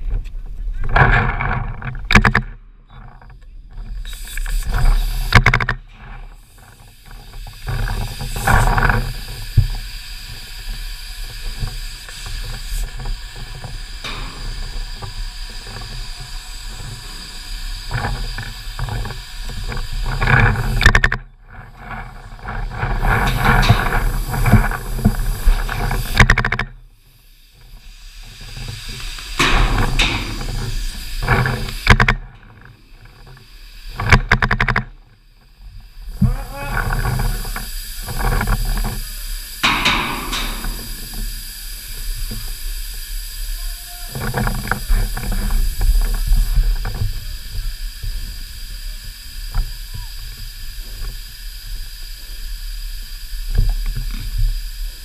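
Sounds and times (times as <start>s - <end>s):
footsteps: 29.2s - 33.3s.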